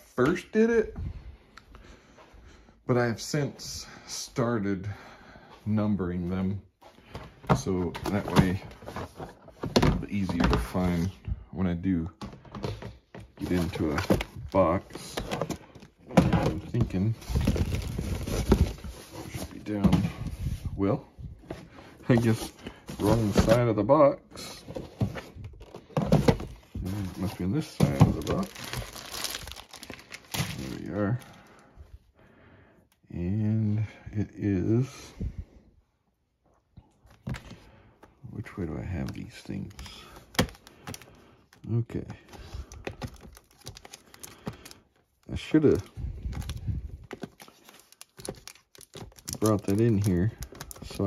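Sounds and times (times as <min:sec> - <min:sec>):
boxes knocking in plastic bin: 0:15.0 - 0:18.8, 0:27.8 - 0:29.0
plastic cases clicking together: 0:42.7 - 0:44.8, 0:45.6 - 0:51.0.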